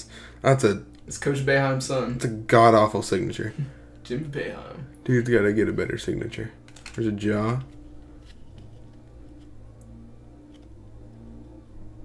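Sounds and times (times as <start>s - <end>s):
handling trading cards: 6.6s - 10.9s.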